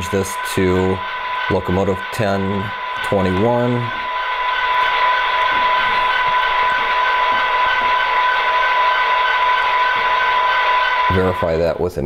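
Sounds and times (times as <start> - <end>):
model diesel locomotive idling: 0.0 - 11.8.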